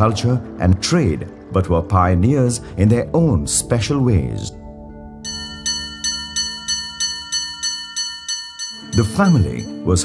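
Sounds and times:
low music drone: 0:00.0 - 0:10.0.

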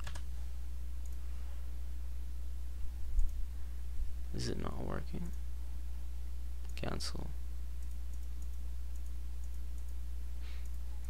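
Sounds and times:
keyboard keystrokes: 0:00.0 - 0:00.2
low electrical hum: 0:00.0 - 0:11.0
computer mouse clicks: 0:07.8 - 0:10.0.

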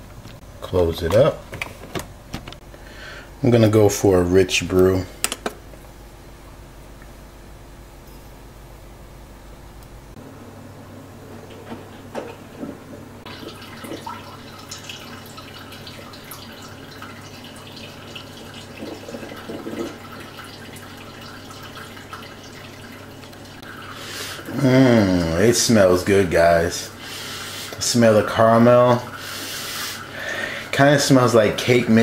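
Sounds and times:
coffee maker humming: 0:09.6 - 0:32.0
coffee maker hissing: 0:11.2 - 0:32.0.

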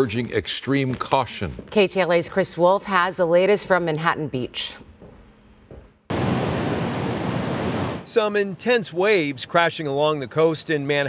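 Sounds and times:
ocean surf breaking on beach: 0:06.1 - 0:08.2.

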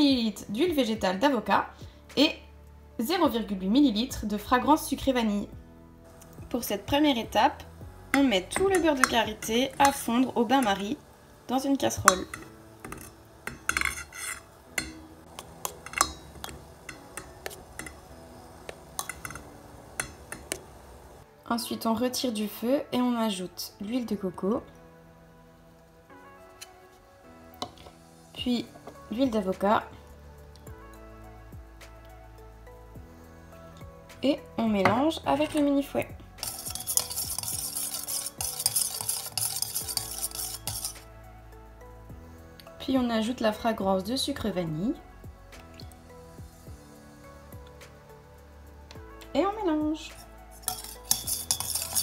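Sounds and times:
whisk clinking against metal bowl: 0:08.2 - 0:10.8, 0:12.0 - 0:18.0, 0:19.0 - 0:19.4, 0:36.4 - 0:41.0, 0:50.6 - 0:52.0.

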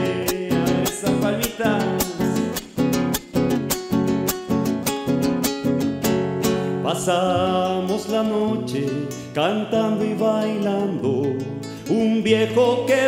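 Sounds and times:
nylon-string acoustic guitar strumming: 0:00.0 - 0:13.0.

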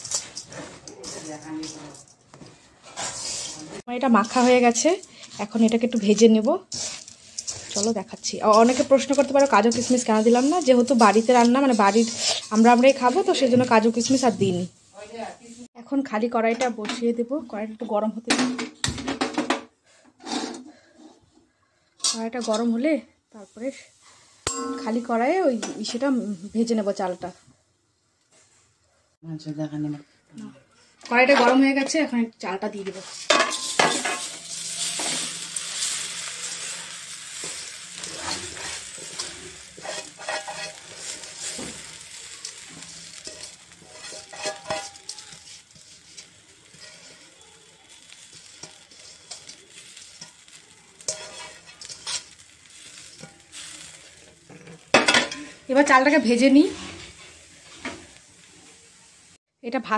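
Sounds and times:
rice sizzling in a hot pan: 0:00.0 - 0:17.7, 0:22.1 - 0:27.4, 0:31.1 - 0:59.9
woman speaking: 0:00.9 - 0:02.0, 0:07.8 - 0:18.2
metal spatula striking pan: 0:24.4 - 0:25.8, 0:33.3 - 0:35.6, 0:37.4 - 0:47.3, 0:47.9 - 0:53.9.

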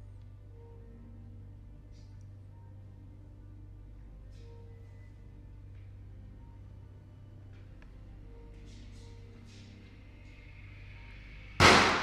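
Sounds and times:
sudden loud bang with echo: 0:11.6 - 0:12.0.

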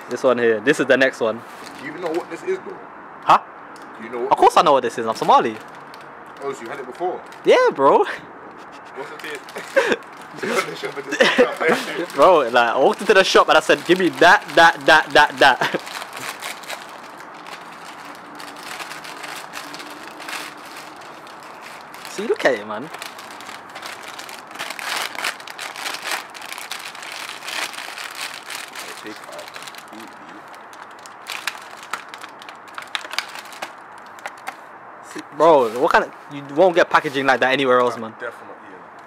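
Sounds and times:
plastic wrapper crinkling: 0:09.0 - 0:34.6.

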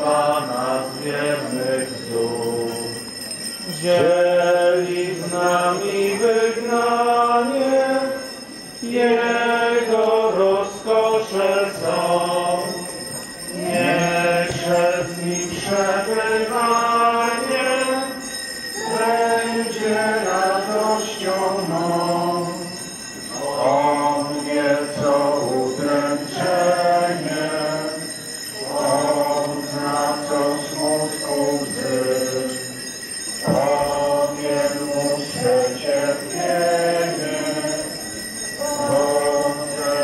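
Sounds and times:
slow liturgical singing: 0:00.0 - 0:40.0.

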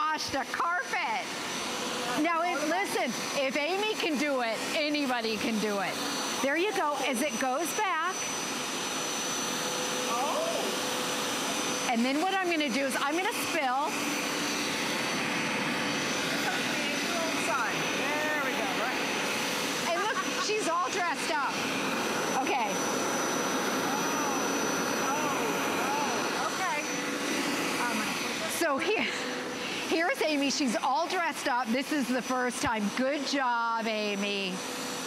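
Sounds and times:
carpet cleaner motor whirring: 0:00.0 - 0:35.0.

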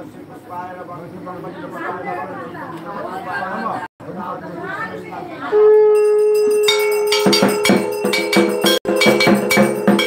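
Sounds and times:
conch shell blown: 0:05.5 - 0:08.1
hand bell ringing rapidly: 0:06.0 - 0:10.0.

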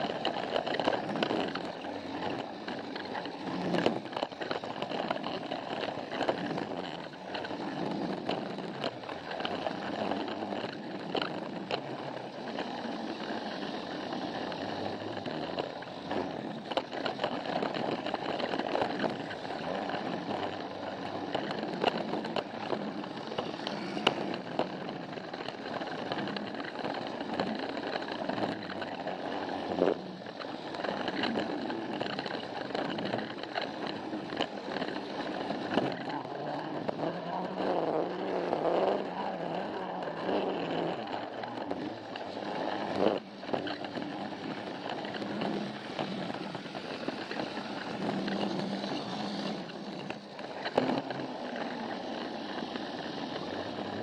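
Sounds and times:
toy train motor whirring: 0:00.0 - 0:54.0
wheels clicking over track joints: 0:00.0 - 0:54.0.

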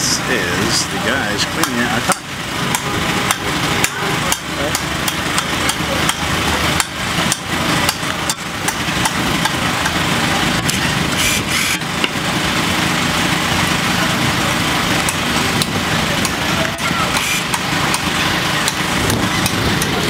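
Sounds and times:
engine idling: 0:00.0 - 0:20.0.

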